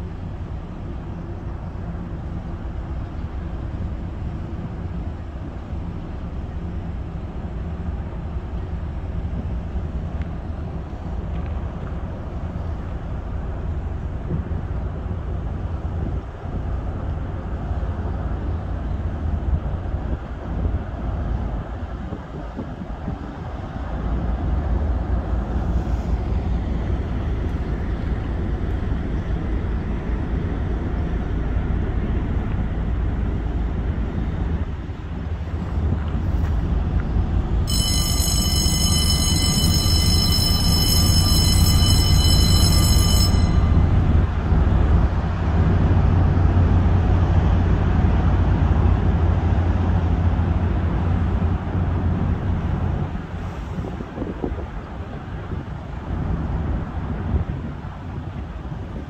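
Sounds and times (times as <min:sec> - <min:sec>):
steady low rumble: 0:00.0 - 0:59.0
bridge warning bell ringing: 0:37.3 - 0:45.2.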